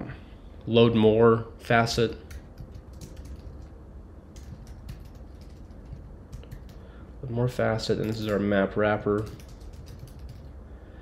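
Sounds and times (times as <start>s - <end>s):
typing on keyboard: 2.2s - 6.9s, 7.9s - 8.4s, 9.2s - 10.6s.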